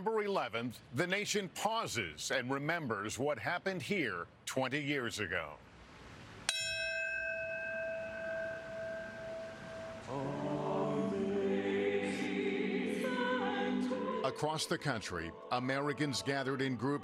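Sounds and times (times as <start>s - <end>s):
brass bell ringing: 6.5s - 10.1s
choir singing: 10.0s - 17.0s.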